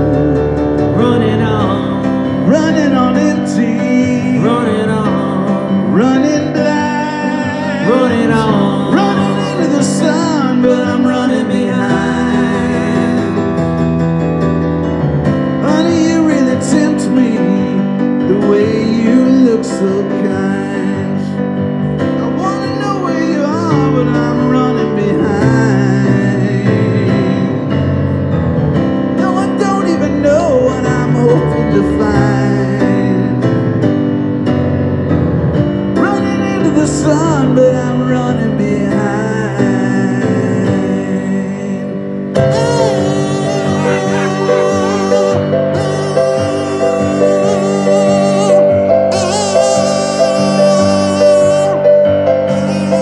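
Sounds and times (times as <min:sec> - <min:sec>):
person singing through pa: 0:00.0 - 0:13.8, 0:15.6 - 0:27.8, 0:29.2 - 0:33.7, 0:36.0 - 0:53.0
keyboard playing chords: 0:00.0 - 0:53.0.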